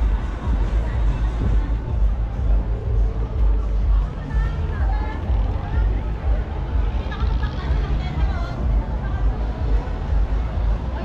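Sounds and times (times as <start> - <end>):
crowd voices and chatter: 0.0 - 11.0
heavy low rumble: 0.0 - 11.0.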